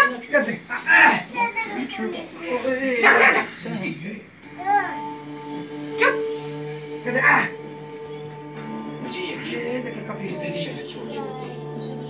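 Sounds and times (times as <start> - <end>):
television background music: 0.0 - 12.0.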